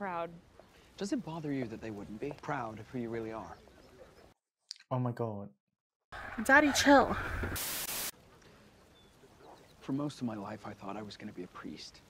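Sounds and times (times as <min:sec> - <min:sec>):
faint hiss: 0:00.0 - 0:03.0, 0:06.3 - 0:12.0
hissing static burst: 0:07.2 - 0:08.2.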